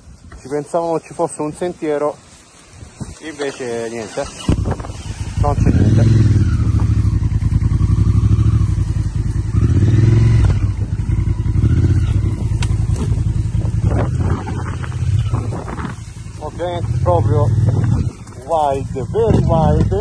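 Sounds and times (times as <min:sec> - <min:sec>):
motorcycle engine revving: 0:03.4 - 0:20.0.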